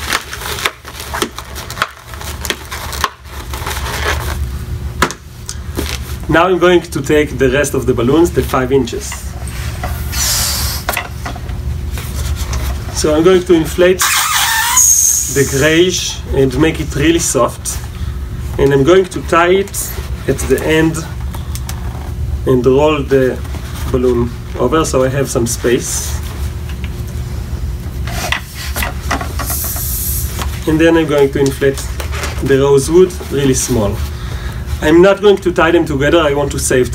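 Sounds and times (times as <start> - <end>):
latex balloons being handled: 0.0 - 6.5
low steady hum: 0.0 - 36.9
balloons rubbing squeaks: 10.0 - 10.9, 14.0 - 15.8.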